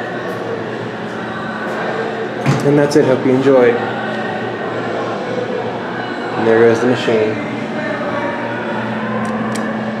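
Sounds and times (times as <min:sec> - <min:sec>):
elevator machine humming: 0:00.0 - 0:10.0.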